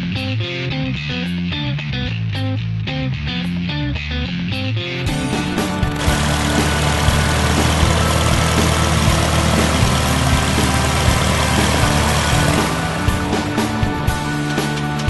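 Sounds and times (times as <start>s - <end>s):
background music: 0.0s - 15.0s
propeller plane engine: 5.1s - 15.0s.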